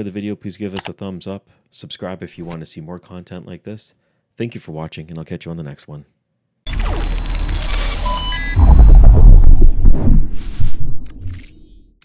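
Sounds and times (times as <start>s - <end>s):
short beeping tones: 6.7s - 9.1s
deep bass rumble: 8.5s - 11.3s.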